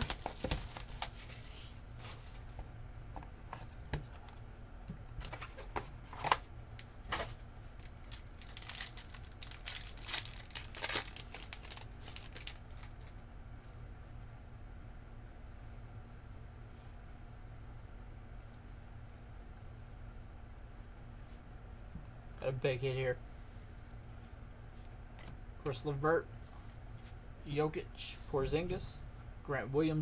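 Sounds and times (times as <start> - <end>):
plastic wrapping tearing and crinkling: 0.0 - 1.6, 7.8 - 13.2.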